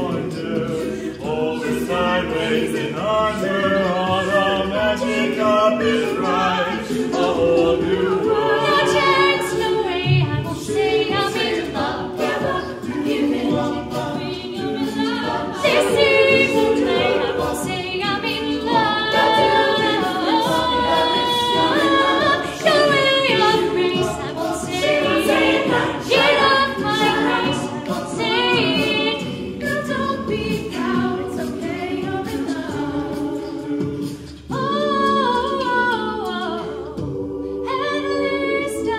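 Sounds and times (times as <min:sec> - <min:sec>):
sung backing harmonies: 0:00.0 - 0:38.9.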